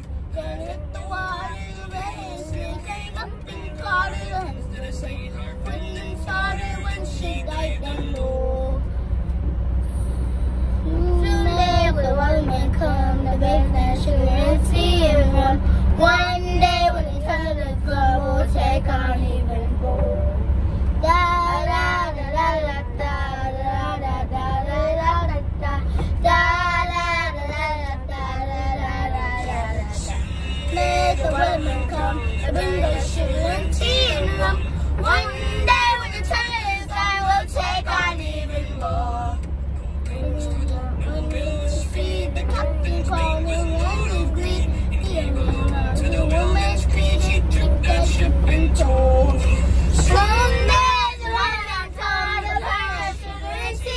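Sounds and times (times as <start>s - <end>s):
low rumble of van cabin: 0.0s - 53.9s
girls singing together: 21.0s - 39.4s, 40.4s - 53.9s.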